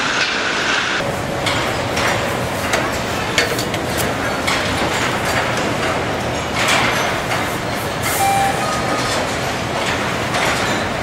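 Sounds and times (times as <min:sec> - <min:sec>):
stamping press machinery din: 0:01.0 - 0:11.0.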